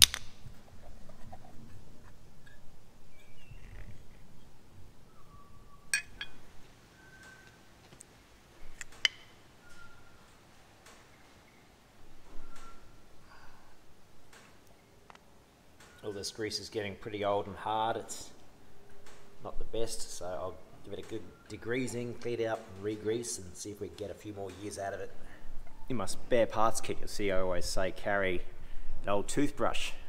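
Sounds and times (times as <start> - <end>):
clicks of handled motor parts: 0.0 - 0.3.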